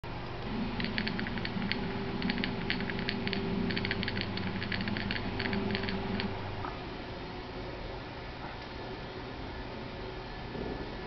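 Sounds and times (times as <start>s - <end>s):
steady low hum: 0.0s - 11.0s
quick sharp clicks: 0.8s - 6.3s.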